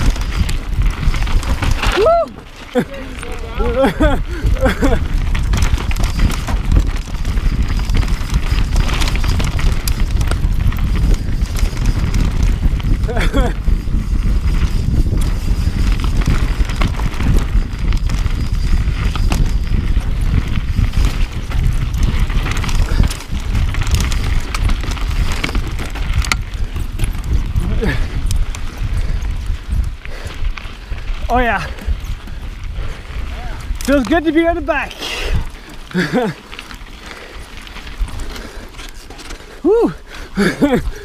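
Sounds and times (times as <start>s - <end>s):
bike rattling: 0.0s - 41.0s
tyres rumbling on dirt: 0.0s - 41.0s
wind buffeting microphone: 0.0s - 41.0s
person crying out: 1.9s - 2.9s, 39.6s - 40.8s.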